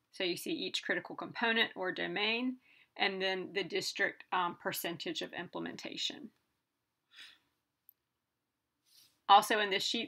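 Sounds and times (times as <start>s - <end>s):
soft breath: 7.1s - 7.6s.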